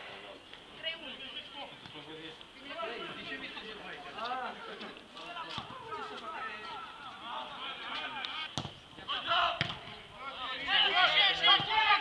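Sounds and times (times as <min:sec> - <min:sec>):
footballers shouting: 0:05.3 - 0:12.0
ball being kicked: 0:08.5 - 0:08.8, 0:09.5 - 0:10.0.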